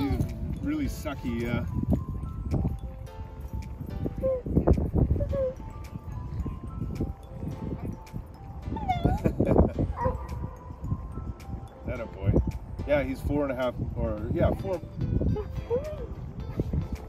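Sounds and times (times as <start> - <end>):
background music: 0.0 - 17.0
dog whining: 4.2 - 5.7, 8.6 - 10.4.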